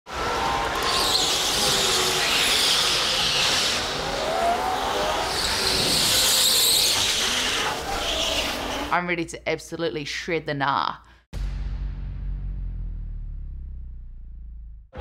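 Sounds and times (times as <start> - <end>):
go-kart tyres squealing: 0.1 - 9.0.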